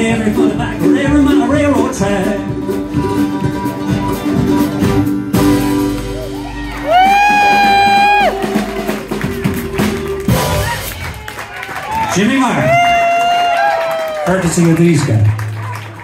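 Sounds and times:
live bluegrass band playing: 0.0 - 12.3.

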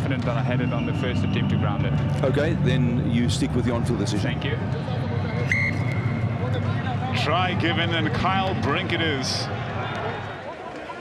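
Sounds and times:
stadium background hum: 0.0 - 11.0
referee whistle blast: 5.4 - 6.1.

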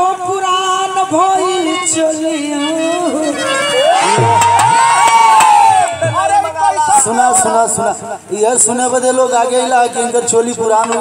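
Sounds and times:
sharp knocks: 4.2 - 7.1.

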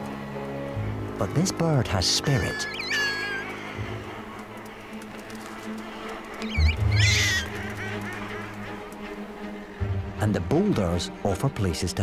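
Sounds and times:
low music drone: 0.0 - 12.0
bird chick calling: 2.2 - 4.3, 6.4 - 8.6.

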